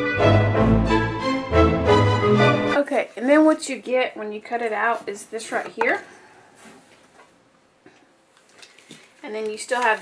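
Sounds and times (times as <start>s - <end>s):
paper rustling: 8.4s - 10.0s.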